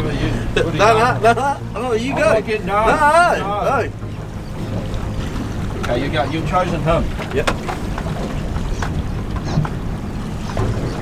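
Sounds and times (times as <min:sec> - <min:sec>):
boat noise: 0:00.0 - 0:11.0
wind rumble: 0:00.0 - 0:11.0.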